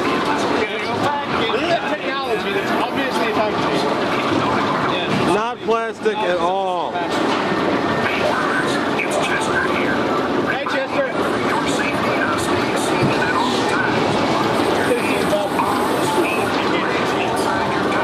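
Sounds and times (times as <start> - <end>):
coaster car rumbling on track: 0.0 - 18.0
indistinct voices: 0.0 - 18.0.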